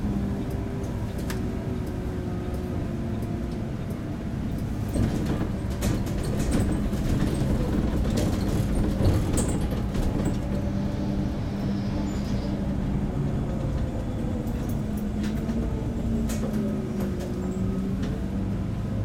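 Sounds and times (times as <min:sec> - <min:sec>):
bus engine hum: 0:00.0 - 0:19.0
engine whine: 0:00.0 - 0:19.0
light rattles and clicks: 0:00.8 - 0:10.6.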